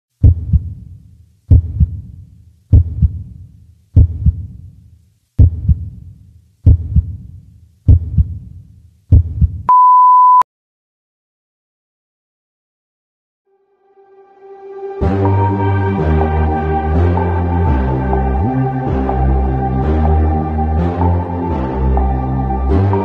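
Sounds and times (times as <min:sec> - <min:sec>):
heartbeat thumps: 0:00.2 - 0:00.9, 0:01.5 - 0:03.4, 0:04.0 - 0:04.6, 0:05.4 - 0:06.0, 0:06.6 - 0:07.3, 0:07.9 - 0:08.5, 0:09.1 - 0:09.7
high beep: 0:09.7 - 0:10.4.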